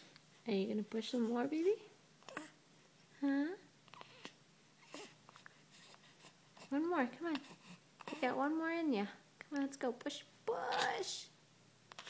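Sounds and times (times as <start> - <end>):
baby vocal sound: 2.2 - 2.6, 3.9 - 6.0, 10.5 - 11.2.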